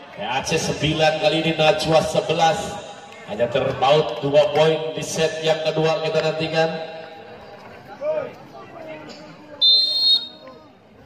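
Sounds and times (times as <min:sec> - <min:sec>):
crowd chatter: 0:00.0 - 0:11.0
referee's whistle blast: 0:09.6 - 0:10.5.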